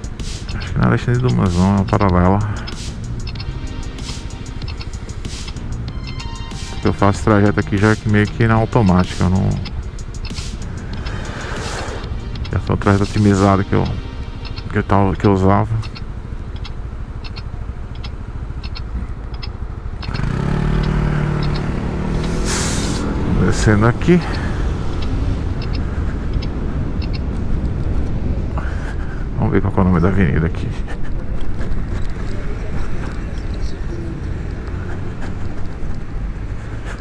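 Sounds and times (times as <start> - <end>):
road traffic noise: 0.0 - 37.0
vehicle passing by: 6.8 - 37.0
wind buffeting microphone: 24.0 - 29.5.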